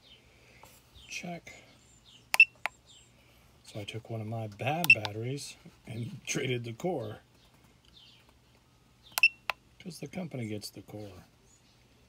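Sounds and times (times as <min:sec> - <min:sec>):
keypad clicks: 0:02.3 - 0:02.8, 0:04.8 - 0:05.1.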